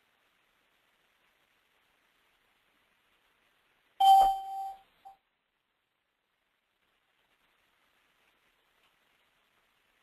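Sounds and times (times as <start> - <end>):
electronic chime ding: 4.0 - 4.9.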